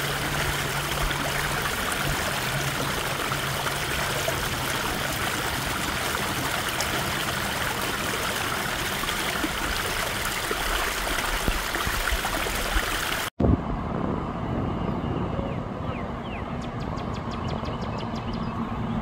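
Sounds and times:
water rushing along sidewalk: 0.0s - 13.3s.

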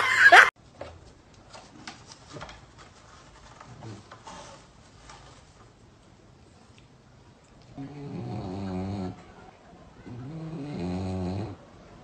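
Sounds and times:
dog snoring: 7.8s - 9.2s, 10.1s - 11.6s.

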